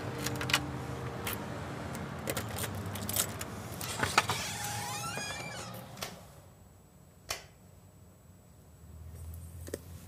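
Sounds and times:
door squeak: 0:03.8 - 0:06.2.

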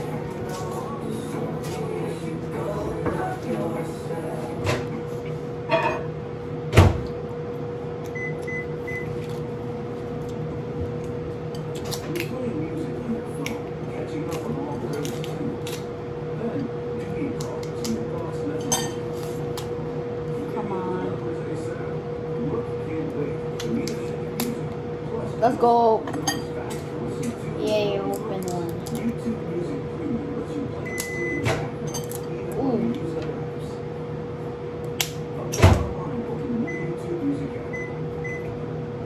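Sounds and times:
low voices: 0:00.0 - 0:05.6, 0:11.9 - 0:19.5, 0:20.3 - 0:34.1
steady hum: 0:00.0 - 0:39.0
utensils clinking on dishes: 0:05.7 - 0:06.2, 0:17.6 - 0:19.4, 0:26.0 - 0:29.1, 0:30.9 - 0:32.5.

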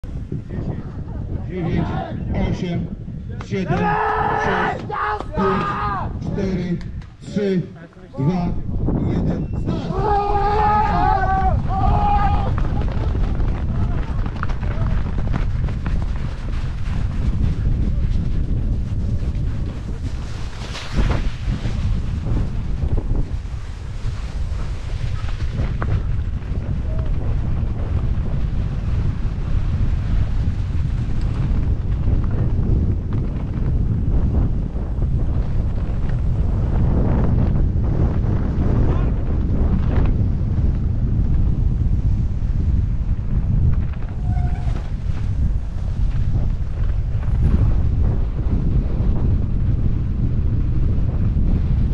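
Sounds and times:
wind buffeting microphone: 0:00.0 - 0:51.9
bike tyres on grass and snow: 0:02.9 - 0:51.9.

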